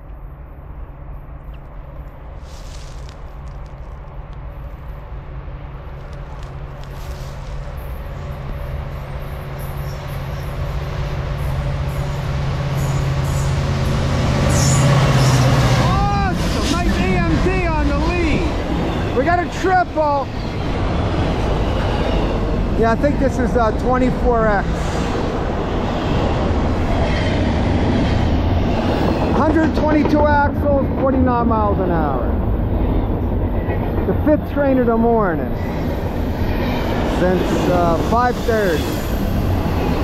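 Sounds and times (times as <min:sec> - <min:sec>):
diesel locomotive engine rumble: 0:00.0 - 0:40.0
freight cars rolling past: 0:05.6 - 0:40.0.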